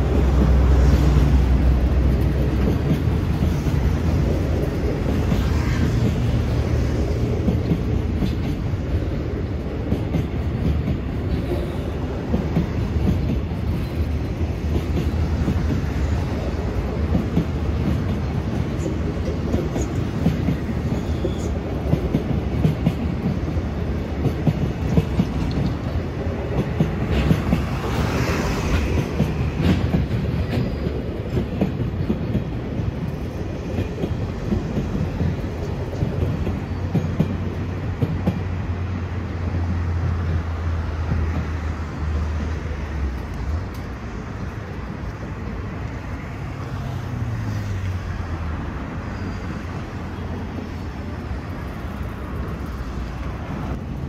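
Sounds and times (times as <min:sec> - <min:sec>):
freight train wagons rolling: 0:00.0 - 0:54.0
steel wheels rumbling on rails: 0:00.0 - 0:54.0.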